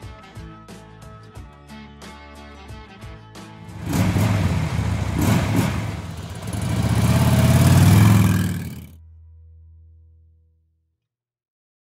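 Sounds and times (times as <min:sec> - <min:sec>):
motorcycle engine revving: 0:03.6 - 0:09.0.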